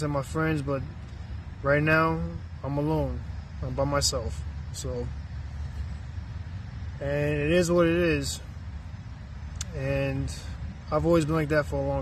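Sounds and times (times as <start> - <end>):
faint hiss: 0.0 - 12.0
outdoor background rumble: 0.0 - 12.0.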